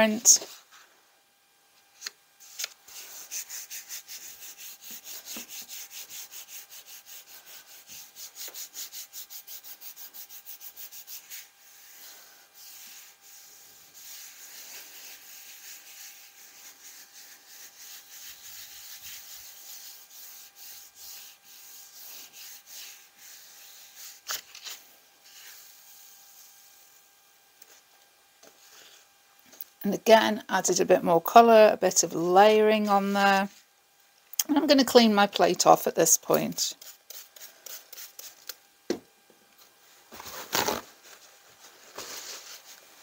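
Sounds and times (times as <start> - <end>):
hand rubbing paper: 2.4 - 27.0.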